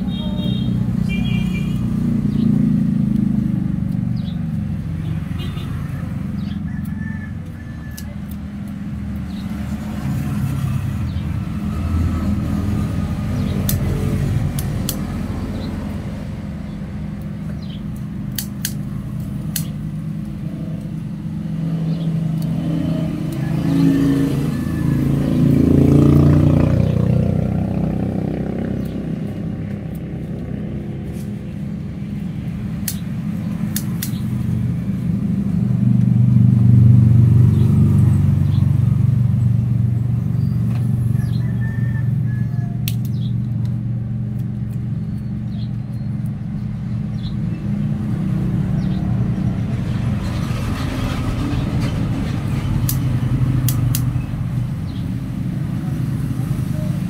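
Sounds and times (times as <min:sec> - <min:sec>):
vehicle engines passing: 0:00.0 - 0:57.0
scissors snipping: 0:06.8 - 0:08.8, 0:12.5 - 0:15.2, 0:17.9 - 0:19.8, 0:32.7 - 0:34.4, 0:42.8 - 0:46.4, 0:52.8 - 0:54.2.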